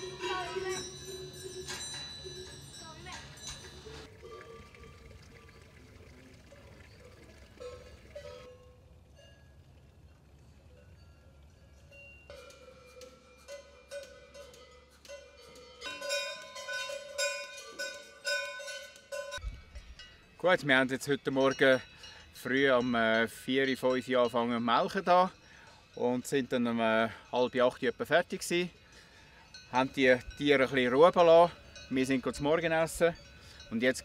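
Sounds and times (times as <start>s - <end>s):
cowbells clanking: 0.0s - 34.0s.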